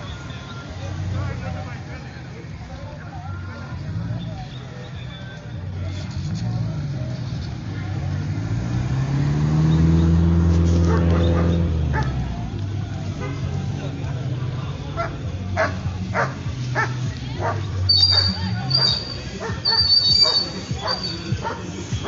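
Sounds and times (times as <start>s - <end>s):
car engine passing: 5.4s - 22.0s.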